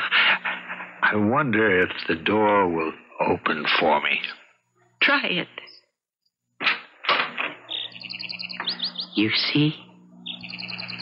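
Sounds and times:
birds chirping: 7.5 - 11.0.

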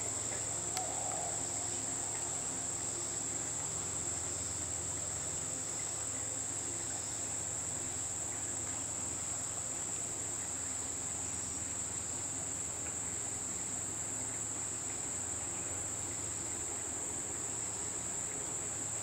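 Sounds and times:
insect chorus drone: 0.0 - 19.0.

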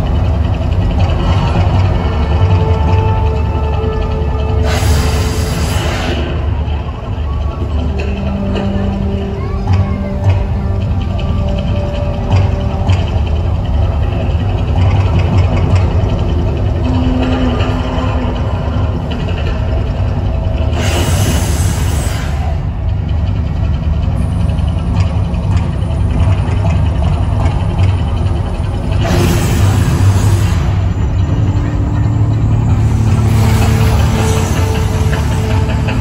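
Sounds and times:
loud low rumble: 0.0 - 36.0.

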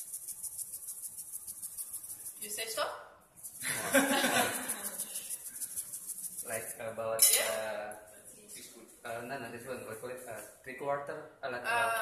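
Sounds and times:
salt shaken into stone mortar: 0.0 - 2.8, 3.4 - 7.5.

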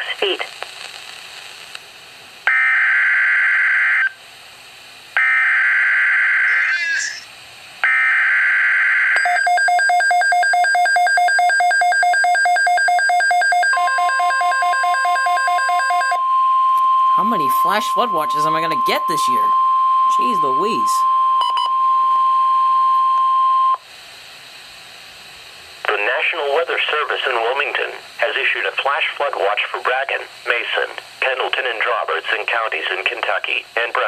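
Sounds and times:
rapid pulsing beep alarm: 5.2 - 7.2, 7.9 - 23.8
digital header data bursts: 6.4 - 7.3, 17.2 - 19.5, 20.1 - 21.0
steady alert tone: 6.4 - 7.3.

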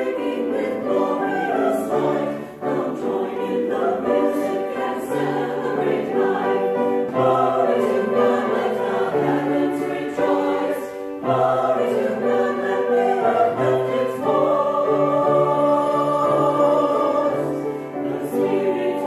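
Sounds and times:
church choir singing: 0.0 - 19.0.

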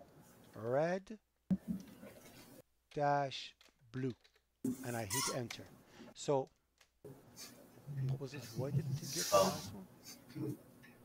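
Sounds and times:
breathy hiss: 8.3 - 10.4.

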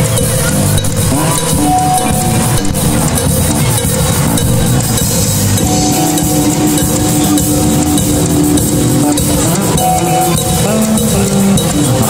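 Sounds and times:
accompanying music: 0.0 - 12.0
drum kit playing: 0.0 - 12.0.

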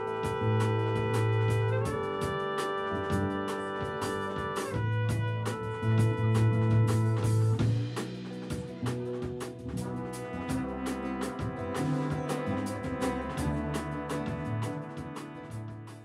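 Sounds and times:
drums: 0.0 - 16.0
trumpets holding chords: 0.0 - 16.0
upright bass line: 0.0 - 16.0.

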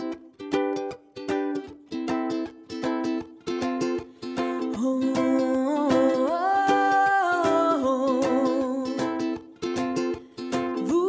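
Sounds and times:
ukulele strumming: 0.0 - 11.0
woman singing wordless melody: 4.3 - 9.5, 10.7 - 11.0.

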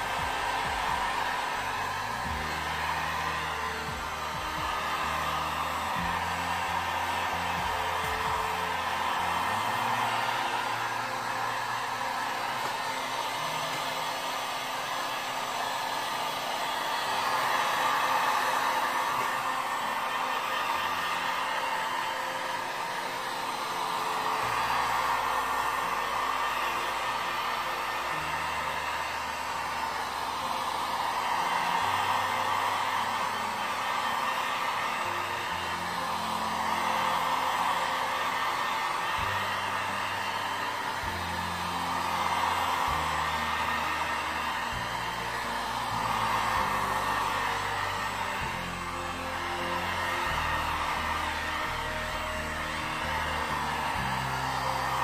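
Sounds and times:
hot-air blower rushing air: 0.0 - 55.0.

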